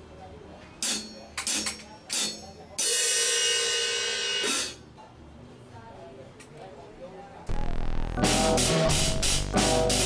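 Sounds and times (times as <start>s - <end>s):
cymbal strikes: 0.8s - 4.8s.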